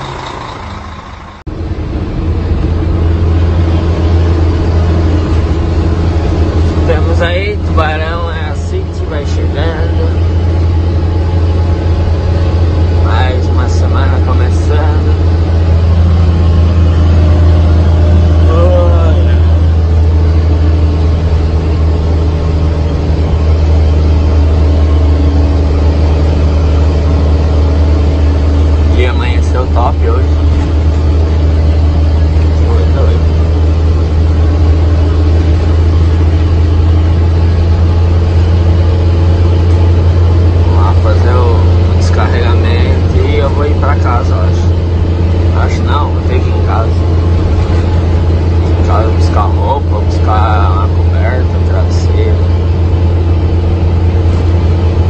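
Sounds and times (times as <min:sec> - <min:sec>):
truck engine and road drone: 0:00.0 - 0:55.0.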